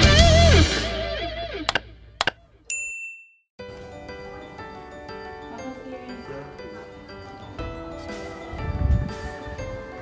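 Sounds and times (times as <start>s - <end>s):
music: 0.0s - 1.7s, 3.6s - 10.0s.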